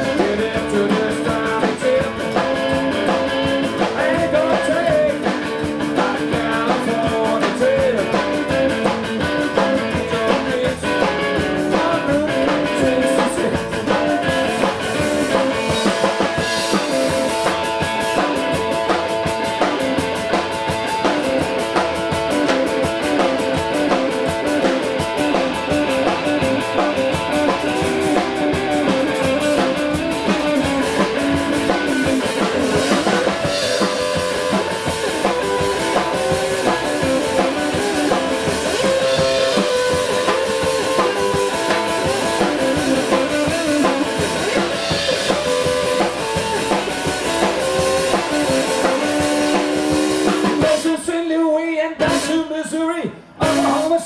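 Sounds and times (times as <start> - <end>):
electric guitar: 0.0 - 51.0
drum kit: 0.0 - 52.8, 53.4 - 54.0.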